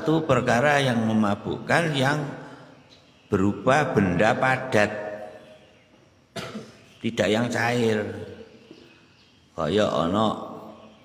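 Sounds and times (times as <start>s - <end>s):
man speaking: 0.0s - 2.4s, 3.3s - 5.3s, 7.0s - 8.4s, 9.6s - 10.8s
man coughing: 6.3s - 6.8s.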